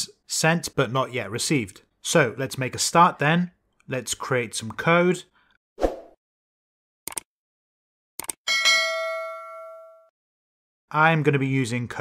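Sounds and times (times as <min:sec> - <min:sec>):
notification bell ding: 0:08.5 - 0:10.1.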